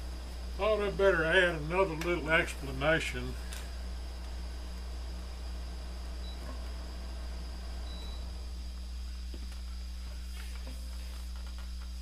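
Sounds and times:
guitar amplifier hum: 0:00.0 - 0:12.0.

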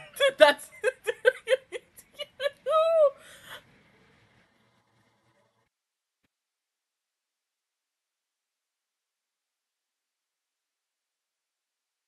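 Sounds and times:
woman whimpering cry: 0:00.0 - 0:03.6
woman's breathy gasp: 0:03.2 - 0:03.7.

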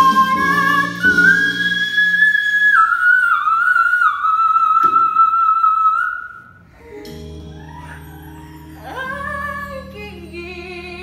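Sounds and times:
backing music: 0:00.0 - 0:02.6, 0:06.7 - 0:11.0.

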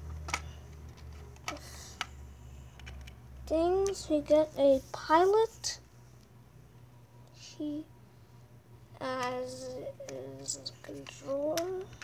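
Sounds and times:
steady low hum: 0:00.0 - 0:12.0
plastic pieces clicking: 0:00.1 - 0:02.1.

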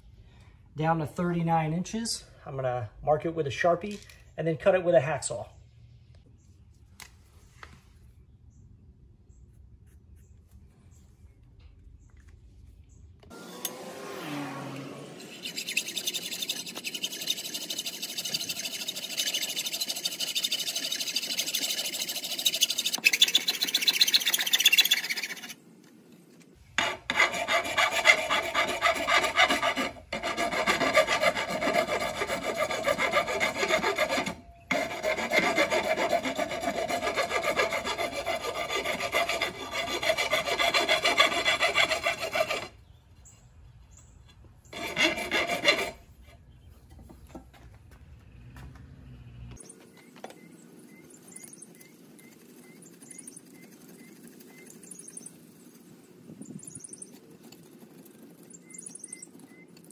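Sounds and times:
hacksaw cutting metal rod: 0:14.8 - 0:25.5, 0:26.8 - 0:42.7, 0:44.8 - 0:46.0.

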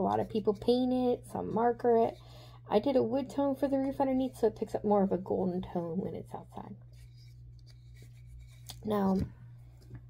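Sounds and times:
woman speaking: 0:00.0 - 0:06.8, 0:08.8 - 0:09.4
steady low hum: 0:00.0 - 0:10.0.

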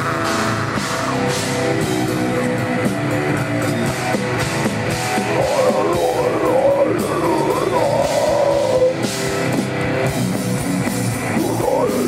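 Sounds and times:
distorted electric guitars: 0:00.0 - 0:12.0
drum kit: 0:00.0 - 0:12.0
heavy metal band playing: 0:00.0 - 0:12.0.

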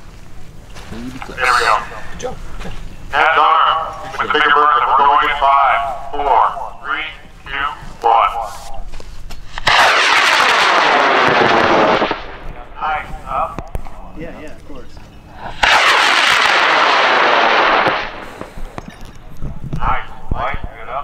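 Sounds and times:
rocket motor roaring: 0:09.5 - 0:13.6, 0:15.4 - 0:18.9.

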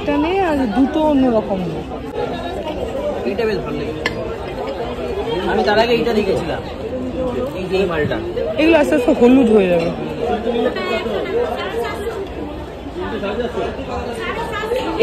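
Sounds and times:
chatter of several voices: 0:00.0 - 0:15.0.

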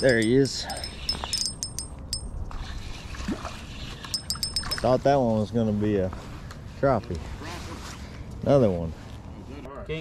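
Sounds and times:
fishing reel ticking: 0:00.0 - 0:02.3, 0:04.1 - 0:04.9.

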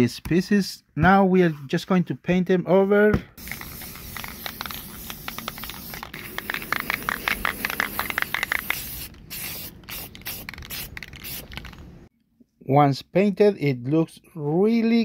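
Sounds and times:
spray paint can hissing: 0:03.4 - 0:11.8.

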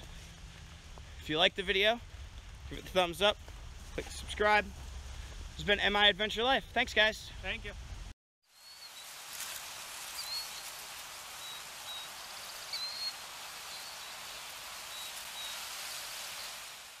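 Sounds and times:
steady outdoor hiss: 0:00.0 - 0:17.0
high bird chirps: 0:11.4 - 0:14.3.

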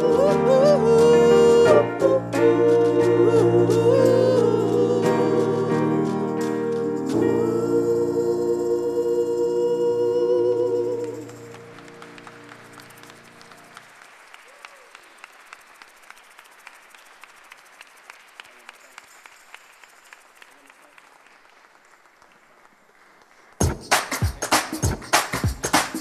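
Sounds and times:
gospel song held chord: 0:00.0 - 0:13.8
quiet applause: 0:10.8 - 0:24.5
loud beating music track: 0:23.6 - 0:26.0.

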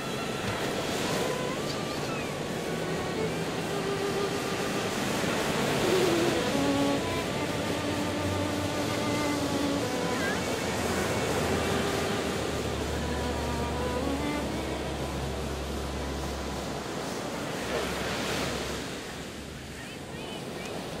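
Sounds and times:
surf waves breaking: 0:00.0 - 0:21.0
wind rumbling on microphone: 0:00.0 - 0:21.0.

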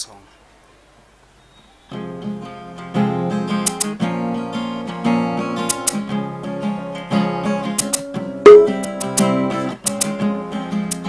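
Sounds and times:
acoustic guitar strumming: 0:01.9 - 0:10.9
sharp percussion hits: 0:08.5 - 0:08.8.

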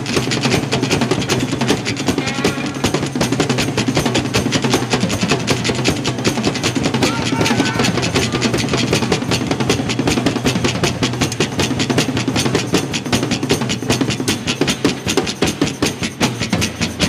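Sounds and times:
drum kit: 0:00.0 - 0:17.0.

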